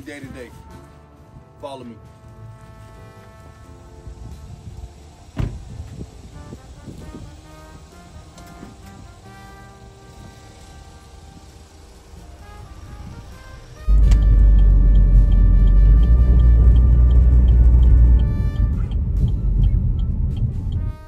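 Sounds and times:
background music: 0:00.0 - 0:21.0
car driving rumble from inside: 0:13.9 - 0:21.0.

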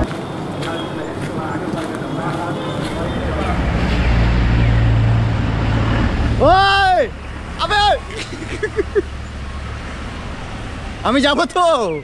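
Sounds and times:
car engine idling: 0:02.8 - 0:11.5
man shouting: 0:06.4 - 0:08.1.

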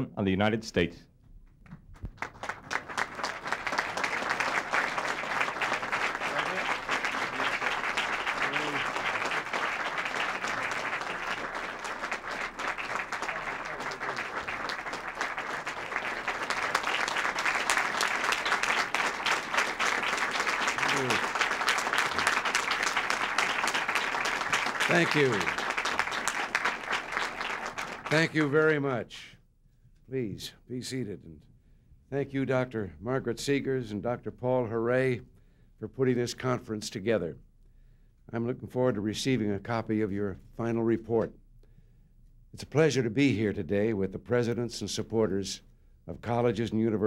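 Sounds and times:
people applauding: 0:02.0 - 0:28.8.

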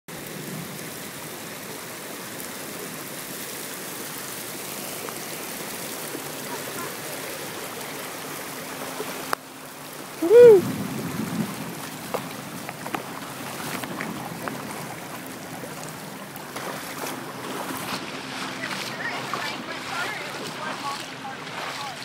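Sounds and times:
heavy rain: 0:00.1 - 0:22.0.

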